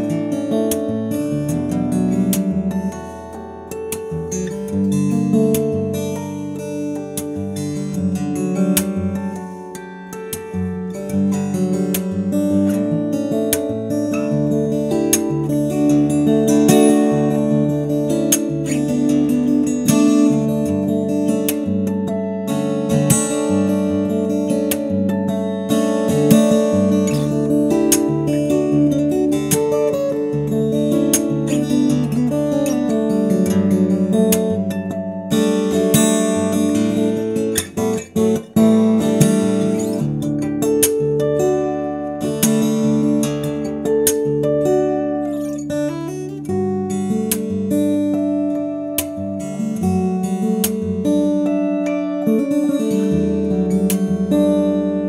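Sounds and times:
fingerpicked acoustic guitar: 0.0s - 55.0s.

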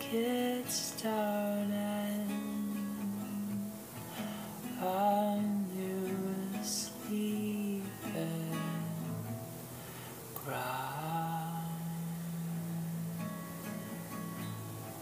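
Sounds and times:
acoustic guitar strumming: 0.0s - 15.0s.

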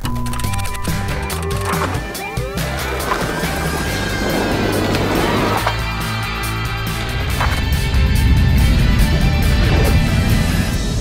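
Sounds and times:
theme music with bass line: 0.5s - 11.0s.

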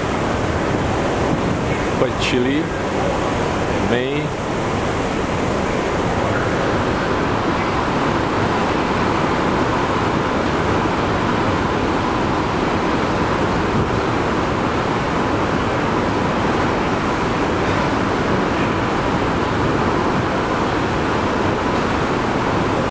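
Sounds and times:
water rushing past hull: 0.0s - 22.9s
wind on microphone: 0.0s - 22.9s.

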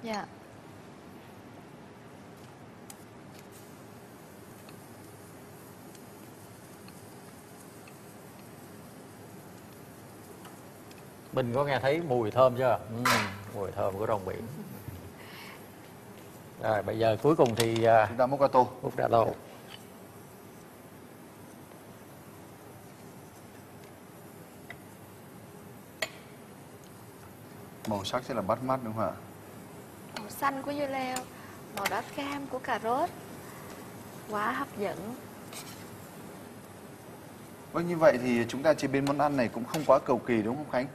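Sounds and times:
faint background hiss: 0.0s - 40.9s.

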